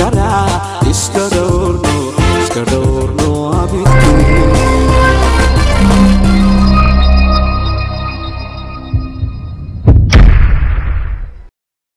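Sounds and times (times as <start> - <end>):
low hit: 3.9 - 11.4
loud booms: 9.8 - 11.5.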